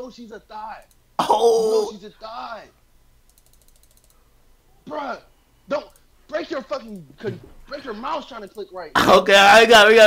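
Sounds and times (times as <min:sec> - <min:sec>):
computer mouse clicks: 0:00.8 - 0:01.0, 0:03.2 - 0:04.2, 0:06.8 - 0:07.1.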